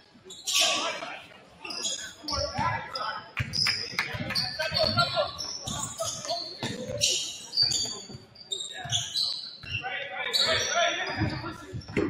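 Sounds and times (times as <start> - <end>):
voices echoing: 0.0 - 12.0
sneaker squeaks: 0.2 - 12.0.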